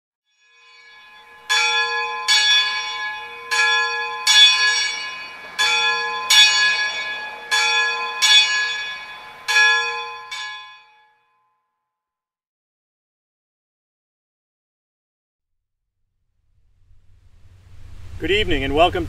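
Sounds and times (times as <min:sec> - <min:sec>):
bell ringing: 0:00.3 - 0:11.4.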